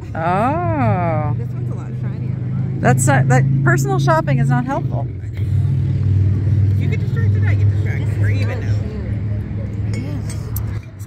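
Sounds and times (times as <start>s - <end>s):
low engine hum: 0.0s - 11.0s
faint indistinct voices: 6.7s - 11.0s.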